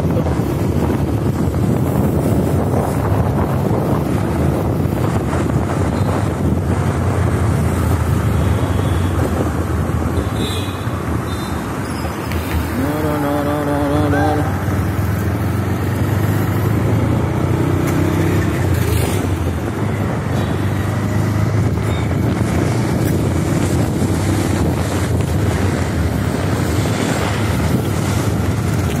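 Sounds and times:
vehicle engine and road noise: 0:00.0 - 0:29.0
wind buffeting microphone: 0:00.0 - 0:29.0
car horn: 0:10.2 - 0:11.7.

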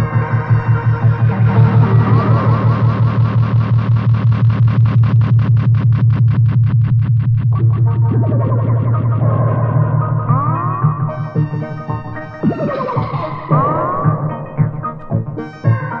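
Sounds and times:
swooping pitch glides: 0:00.0 - 0:04.8, 0:07.5 - 0:16.0
synthesizer music pulsing drone: 0:00.0 - 0:16.0.

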